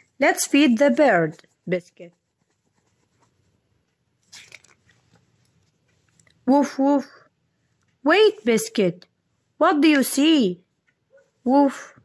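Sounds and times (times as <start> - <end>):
paper page rustling: 0.0 - 6.4.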